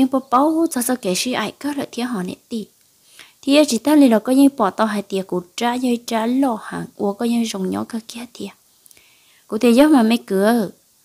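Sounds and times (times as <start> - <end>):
person narrating a story: 0.0 - 2.7, 3.4 - 8.6, 9.5 - 10.8.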